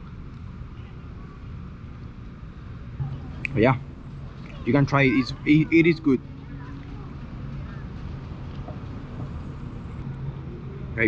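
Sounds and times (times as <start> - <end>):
outdoor hum and rumble: 0.0 - 11.0.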